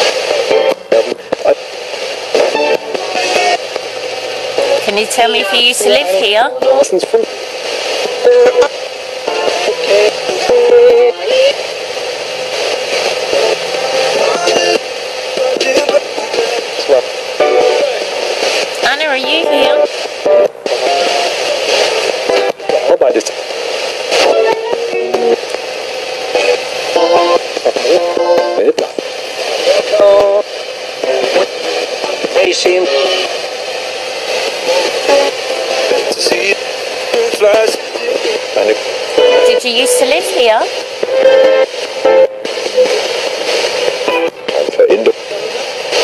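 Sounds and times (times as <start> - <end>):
radio static hiss: 0.0 - 46.0
snatches of broadcast voices: 0.0 - 46.0.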